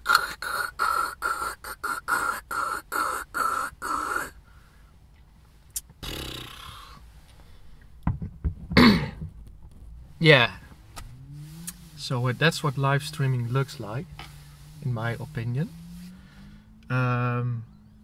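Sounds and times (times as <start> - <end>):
man making rhythmic vocal noises: 0.0 - 4.4, 11.8 - 14.1.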